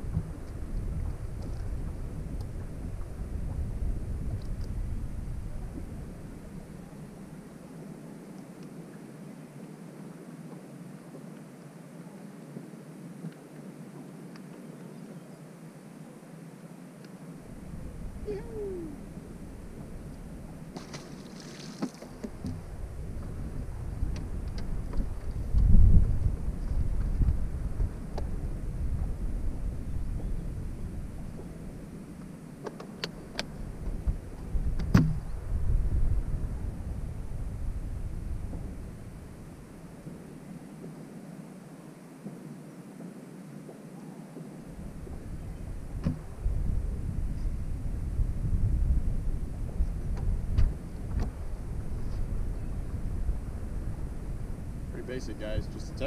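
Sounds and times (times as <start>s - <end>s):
wind buffeting microphone: 0.0s - 7.4s, 17.4s - 32.4s, 33.2s - 40.4s, 44.6s - 56.0s
fish splashing into water: 20.7s - 22.2s.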